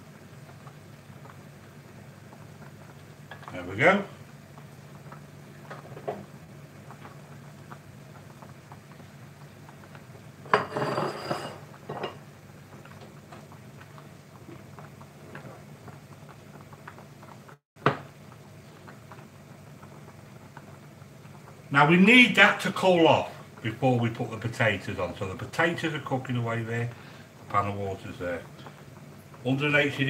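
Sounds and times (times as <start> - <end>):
pots and utensils clattering: 10.4 - 12.2.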